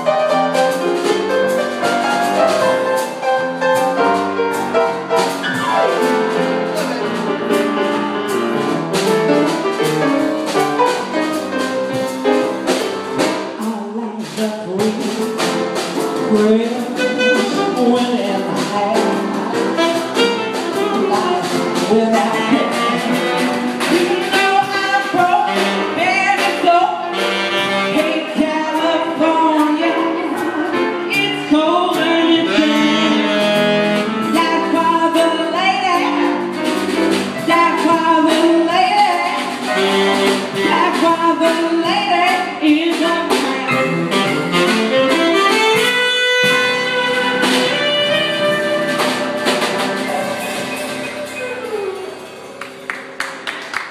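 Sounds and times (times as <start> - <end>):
sliding melody line: 0.0 - 53.5
drum kit strokes: 0.0 - 53.9
grand piano: 0.0 - 53.9
gliding melody line: 47.1 - 53.2.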